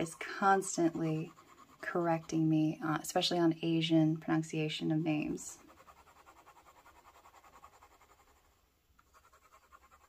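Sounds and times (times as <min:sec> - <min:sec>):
fountain pen scratching on paper: 0:00.0 - 0:02.8, 0:05.6 - 0:10.0.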